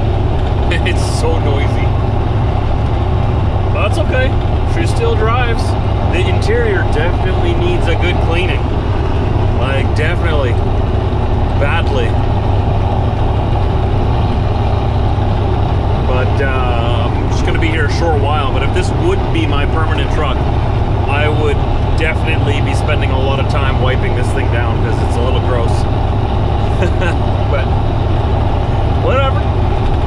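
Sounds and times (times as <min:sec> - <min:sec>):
diesel engine drone: 0:00.0 - 0:30.0
road and wind noise: 0:00.0 - 0:30.0.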